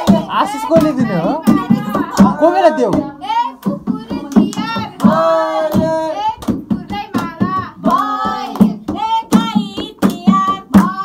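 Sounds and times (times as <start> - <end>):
group singing: 0.0 - 11.0
rhythmic hand clapping: 0.0 - 11.0.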